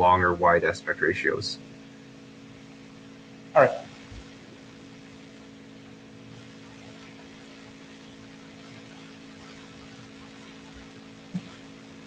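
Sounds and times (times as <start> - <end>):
low electrical hum: 0.0 - 12.0
soft low thump: 11.3 - 11.6.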